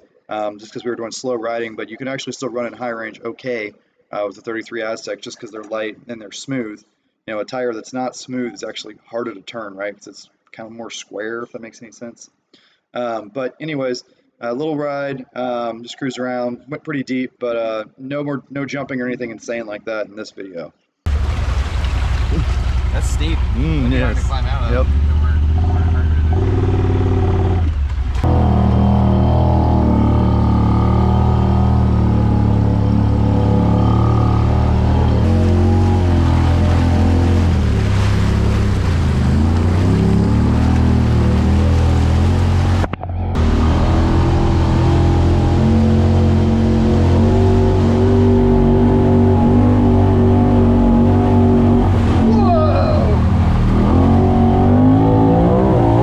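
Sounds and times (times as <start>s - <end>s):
water splashing: 21.1s - 26.5s, 31.0s - 56.0s
engine running: 21.1s - 56.0s.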